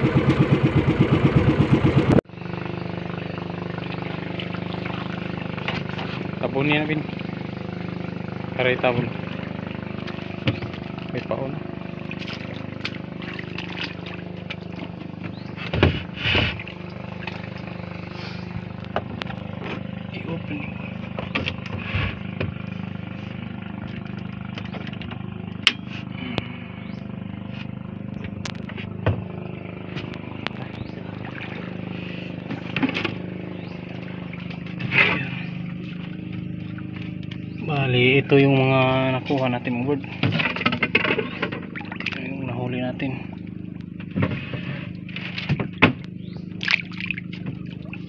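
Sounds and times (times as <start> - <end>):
boat engine idling: 0.0 - 48.0
knocks and clatters: 40.1 - 42.2.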